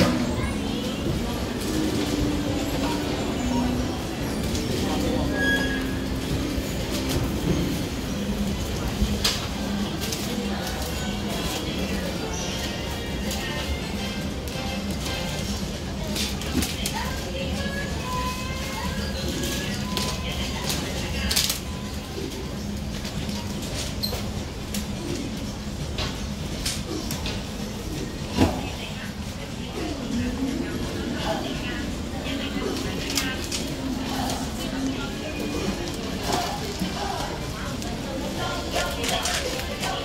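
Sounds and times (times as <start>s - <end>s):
murmur of voices: 0.0s - 40.0s.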